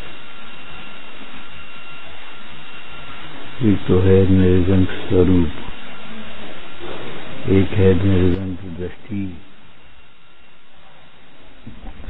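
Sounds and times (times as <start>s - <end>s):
faint high whine: 0.0s - 12.0s
old recording hiss: 0.0s - 12.0s.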